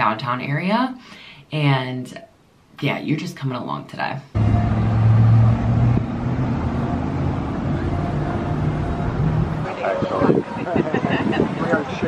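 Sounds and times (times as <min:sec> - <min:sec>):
vehicle engine humming: 0:04.4 - 0:12.0
murmur of voices: 0:09.5 - 0:12.0.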